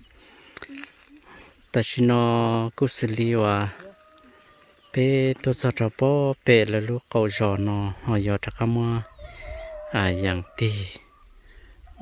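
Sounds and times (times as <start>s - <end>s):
man speaking: 1.7s - 4.0s, 4.9s - 9.2s, 9.9s - 11.1s
rooster crowing faintly: 3.7s - 5.0s.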